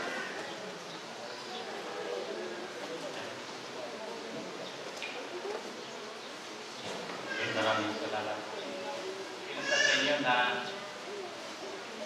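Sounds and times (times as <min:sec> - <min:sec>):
quiet speech: 0:00.0 - 0:12.0.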